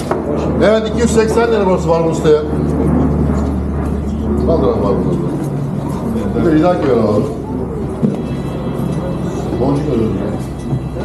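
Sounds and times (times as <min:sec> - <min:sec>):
steady low hum: 0:00.0 - 0:11.0
men talking indistinctly: 0:00.1 - 0:03.0, 0:04.2 - 0:11.0.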